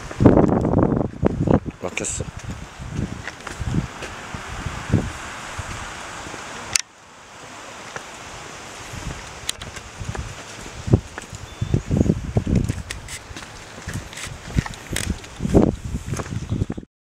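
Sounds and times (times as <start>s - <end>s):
steady hiss: 0.0s - 16.7s.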